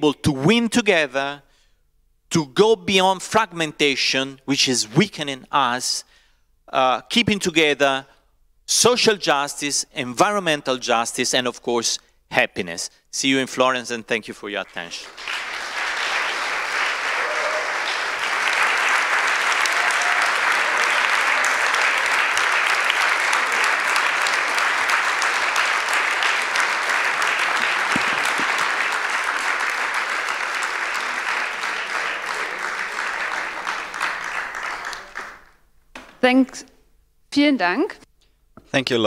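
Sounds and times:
audience applauding: 0:14.7 - 0:35.6.

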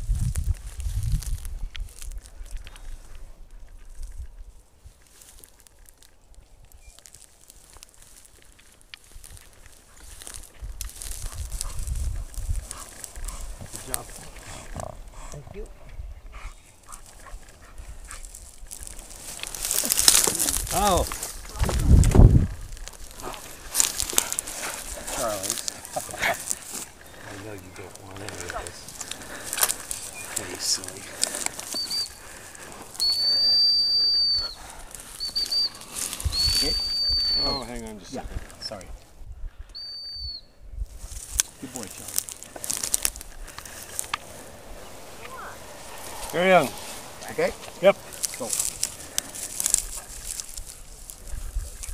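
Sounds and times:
dog-training whistle blast: 0:31.7 - 0:32.2, 0:33.0 - 0:34.6, 0:35.2 - 0:37.7, 0:39.8 - 0:40.5.

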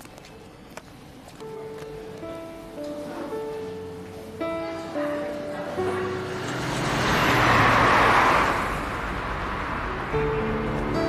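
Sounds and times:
low traffic rumble: 0:04.4 - 0:11.0
car passing by: 0:05.8 - 0:11.0.

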